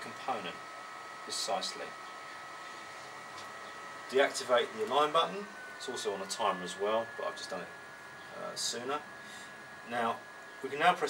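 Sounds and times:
equipment hiss: 0:00.0 - 0:11.0
faint high whine: 0:00.0 - 0:11.0.

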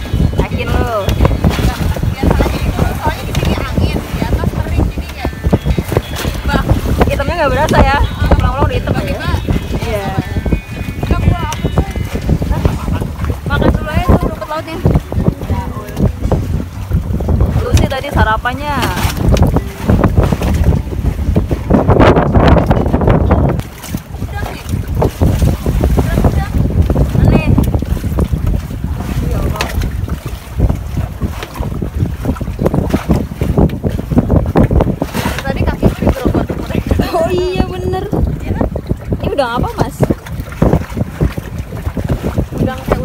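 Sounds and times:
strong wind buffeting microphone: 0:00.0 - 0:43.0.

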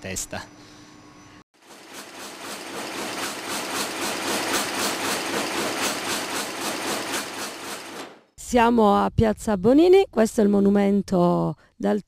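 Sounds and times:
loom clattering: 0:01.8 - 0:08.1.

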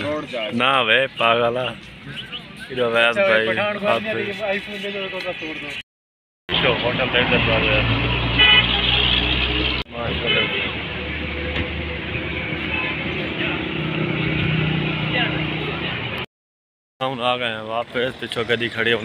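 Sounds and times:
road and traffic noise: 0:00.0 - 0:05.8, 0:06.5 - 0:16.3, 0:17.0 - 0:19.0.

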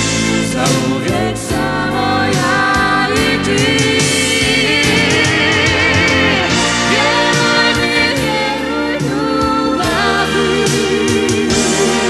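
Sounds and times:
drums: 0:00.0 - 0:12.0
electric guitar: 0:00.0 - 0:12.0
man and woman singing duet: 0:00.1 - 0:12.0.

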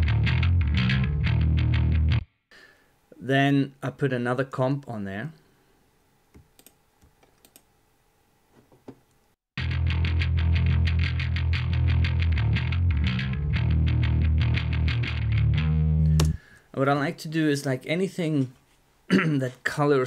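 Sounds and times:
distorted electric bass riff: 0:00.0 - 0:02.3, 0:09.6 - 0:16.4.

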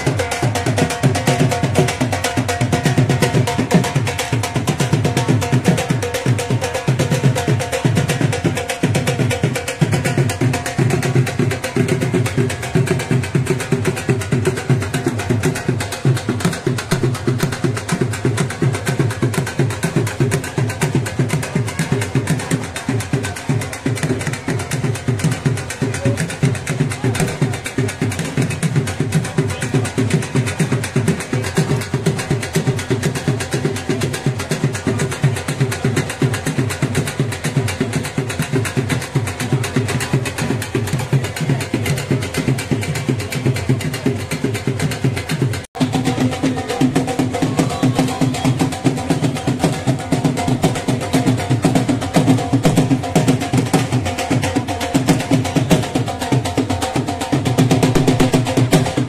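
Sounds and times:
music with fast drums: 0:00.0 - 0:59.0.

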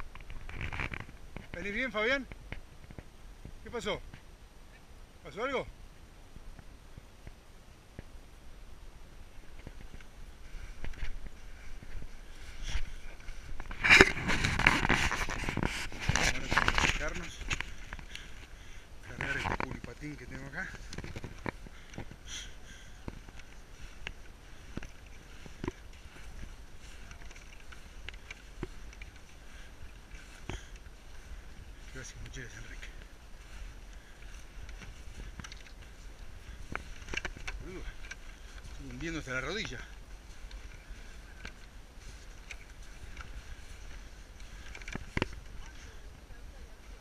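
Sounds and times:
wind rumbling on microphone: 0:00.0 - 0:47.0
footsteps in deep snow: 0:09.0 - 0:47.0
snow crunches and knocks: 0:09.4 - 0:22.4.

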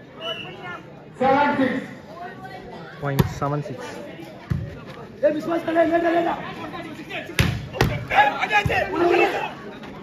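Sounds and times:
people shouting: 0:07.2 - 0:09.6.

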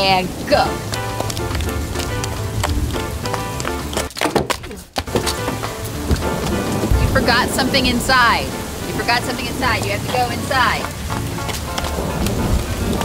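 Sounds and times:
rain: 0:00.0 - 0:13.0
background music with beat: 0:00.5 - 0:04.2, 0:05.0 - 0:13.0.

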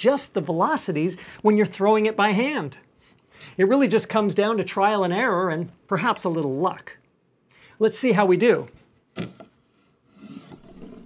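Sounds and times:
disk rolling on wooden table: 0:10.4 - 0:11.0.

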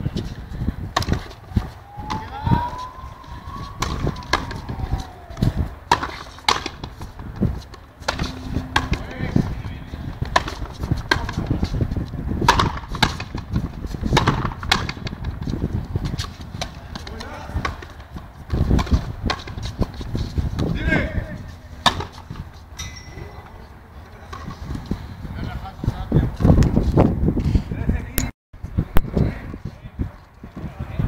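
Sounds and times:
ball hit with racquets cracking: 0:00.9 - 0:11.8, 0:12.4 - 0:15.4, 0:21.8 - 0:22.4.

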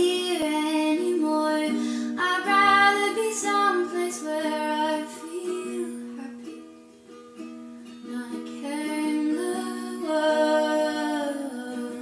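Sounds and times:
woman singing: 0:00.0 - 0:06.6, 0:08.0 - 0:12.0
ukulele: 0:00.0 - 0:12.0.

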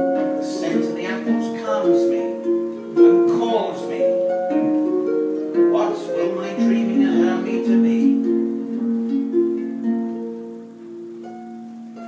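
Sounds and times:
harp plucked notes: 0:00.0 - 0:12.0.

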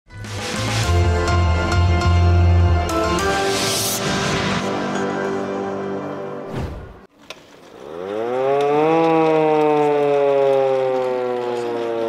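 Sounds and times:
hand-cranked air-raid siren wailing: 0:07.9 - 0:12.0.

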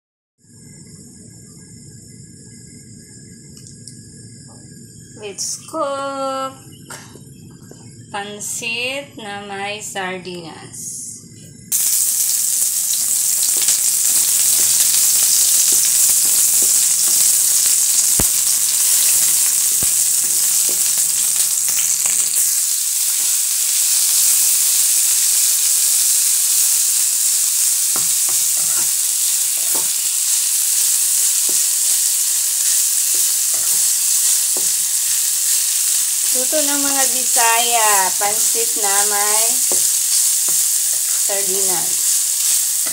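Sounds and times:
oil sizzling in a wok: 0:11.2 - 0:42.9
spatula scraping a pan: 0:27.9 - 0:36.4.

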